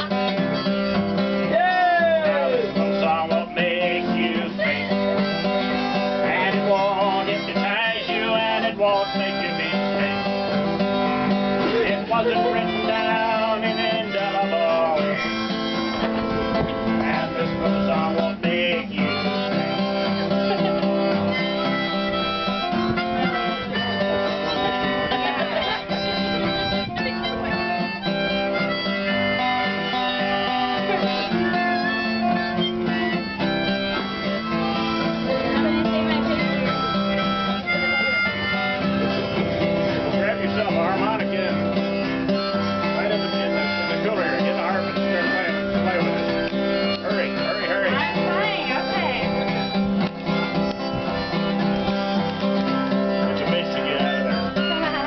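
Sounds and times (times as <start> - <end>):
acoustic guitar strumming: 0.0 - 55.0
harmonicas playing chords: 0.0 - 55.0.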